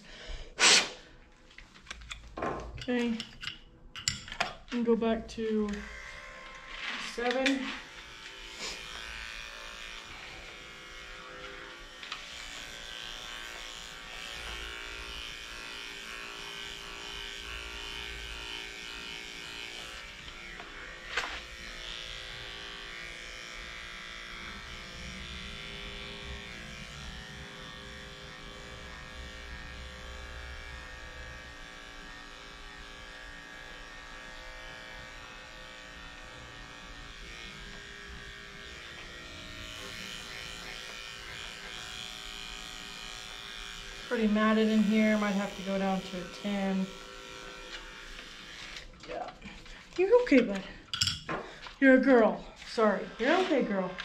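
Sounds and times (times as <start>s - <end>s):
electric clippers shaving fur: 4.6s - 54.0s.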